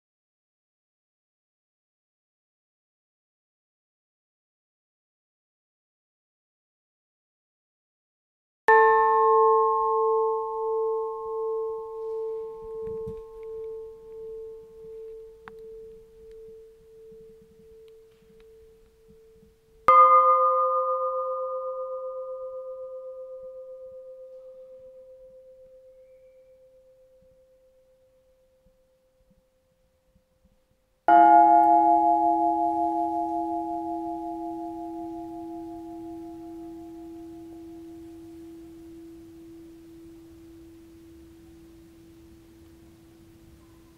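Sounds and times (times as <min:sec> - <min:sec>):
church bell ringing: 0:08.7 - 0:26.8, 0:31.1 - 0:43.9.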